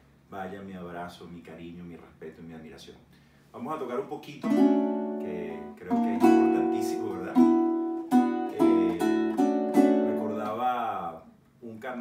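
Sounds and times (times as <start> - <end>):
strummed string instrument chords: 4.5 - 10.5
man's voice: 5.2 - 7.5, 8.4 - 12.0.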